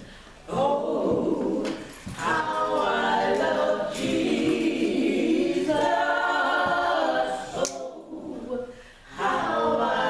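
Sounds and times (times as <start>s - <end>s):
women singing hymn unaccompanied: 0.4s - 10.0s.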